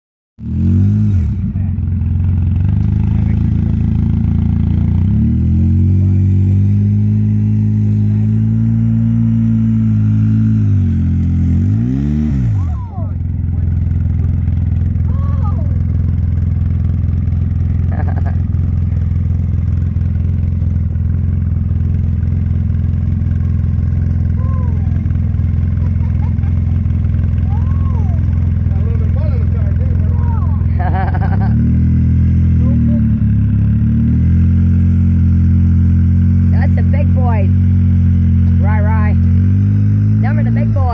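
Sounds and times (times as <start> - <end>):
utility vehicle engine revving: 0.4 - 40.9.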